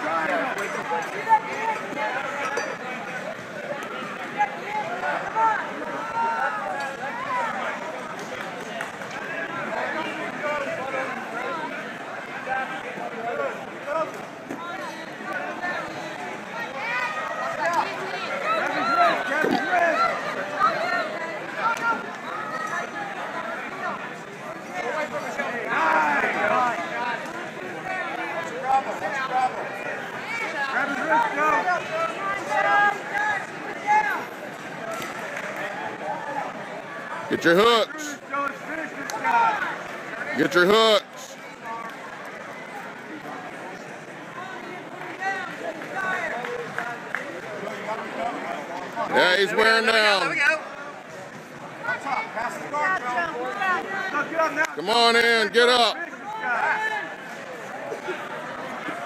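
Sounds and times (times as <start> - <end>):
crowd babble in a hall: 0.0 - 59.0.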